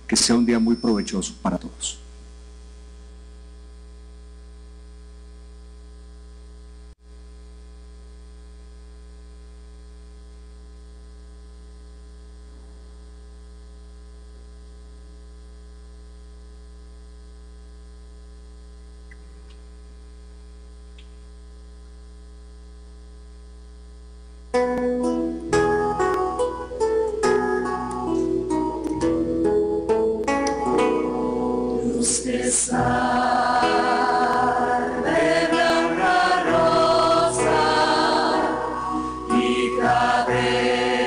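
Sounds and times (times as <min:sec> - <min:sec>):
electrical mains hum: 0:00.0 - 0:41.0.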